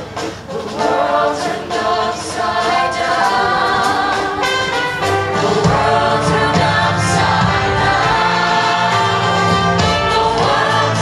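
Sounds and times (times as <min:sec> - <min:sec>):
choir singing through pa: 0:00.0 - 0:11.0.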